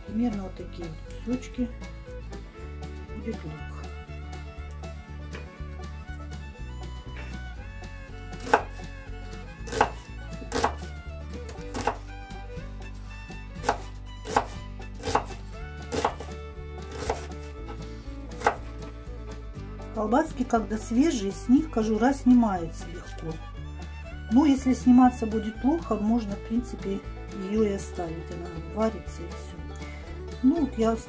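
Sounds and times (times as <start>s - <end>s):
knife chopping on plastic board: 8.4s - 8.9s, 9.7s - 10.9s, 11.5s - 12.0s, 13.6s - 16.3s, 16.9s - 17.3s, 18.4s - 18.7s.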